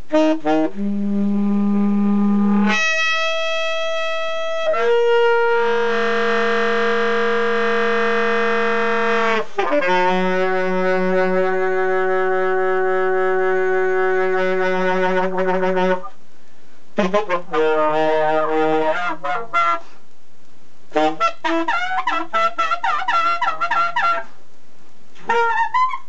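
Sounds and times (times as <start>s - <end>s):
alto saxophone held notes: 0.0s - 16.2s, 17.0s - 20.0s, 20.9s - 24.3s, 25.2s - 26.0s.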